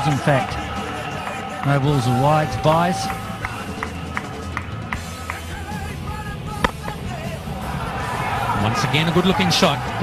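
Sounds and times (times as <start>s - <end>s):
cricket bat hitting ball: 6.6s - 7.2s.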